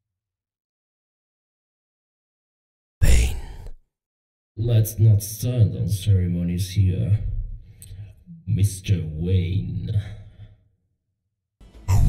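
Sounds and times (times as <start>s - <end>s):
processed breathy man's voice: 3.0s - 3.8s, 4.6s - 10.6s.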